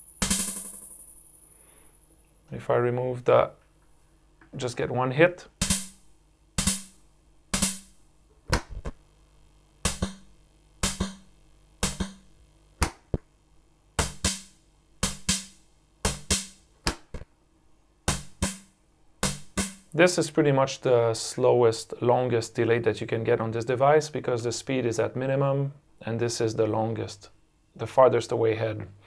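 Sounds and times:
drum machine hits with tape echo: 0:00.0 - 0:01.0, 0:05.6 - 0:06.0, 0:06.6 - 0:08.0, 0:09.8 - 0:13.2, 0:14.0 - 0:17.2, 0:18.1 - 0:20.0.

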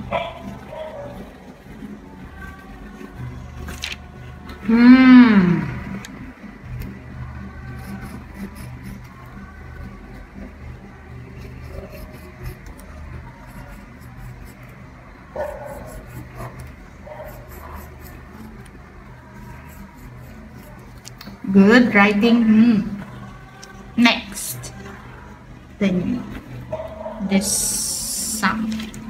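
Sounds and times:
steady low hum: 0:00.0 - 0:29.0
pen scratching on paper: 0:15.4 - 0:18.7.

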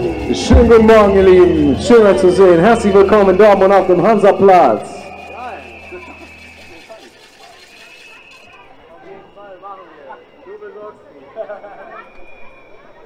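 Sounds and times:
low hum: 0:00.0 - 0:06.9
people chattering: 0:00.0 - 0:13.0
thin high tone: 0:00.0 - 0:13.0.

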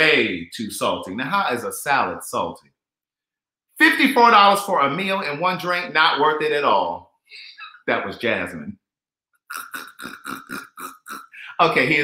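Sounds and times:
man laughing under his breath: 0:09.5 - 0:11.6.

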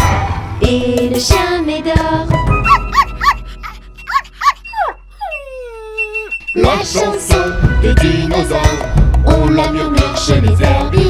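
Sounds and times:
cartoon puppy yips: 0:02.5 - 0:06.6
puppy whimper: 0:02.6 - 0:06.6.

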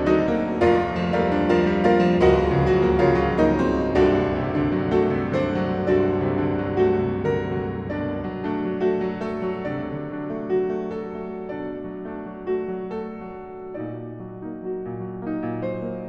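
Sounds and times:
solo piano music: 0:00.0 - 0:16.0.

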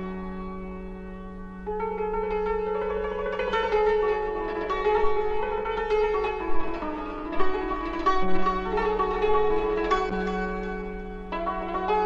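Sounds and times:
plucked string instrument melody: 0:00.0 - 0:12.0.

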